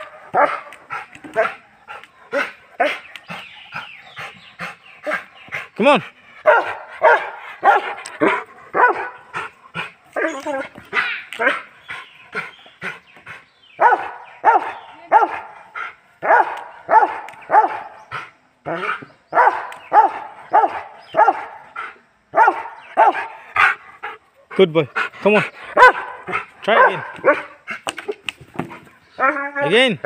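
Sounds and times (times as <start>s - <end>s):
dog barking: 0.0s - 0.7s, 6.4s - 9.3s, 13.8s - 15.6s, 16.2s - 18.0s, 18.8s - 21.6s, 22.3s - 23.4s, 25.7s - 27.6s.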